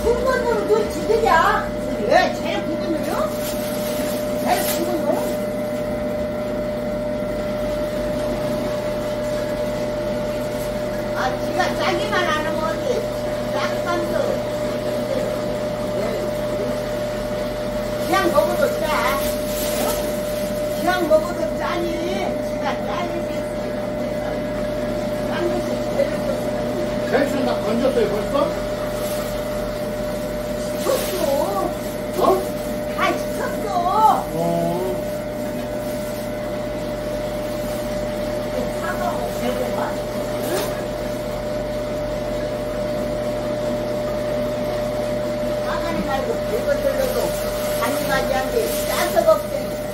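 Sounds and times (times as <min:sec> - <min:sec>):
electric grinder motor humming: 0:00.0 - 0:49.9.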